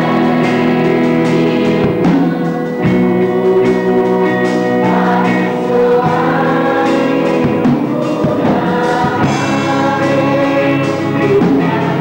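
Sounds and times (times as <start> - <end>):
choir singing long notes: 0.0 - 12.0.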